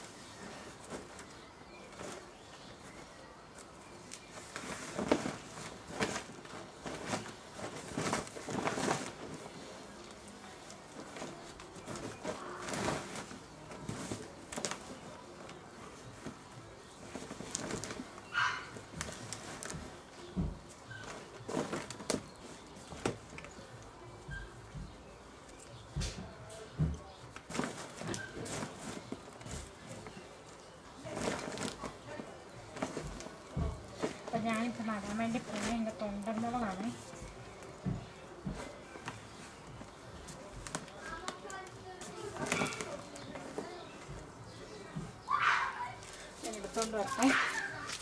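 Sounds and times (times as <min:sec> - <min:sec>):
plastic tarp rustling and crinkling: 0:00.0 - 0:24.0, 0:26.0 - 0:44.3, 0:45.4 - 0:48.0.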